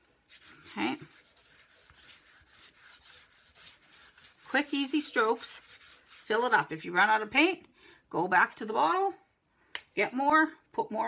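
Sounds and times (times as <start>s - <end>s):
paint smearing on cardboard: 0.0s - 6.5s.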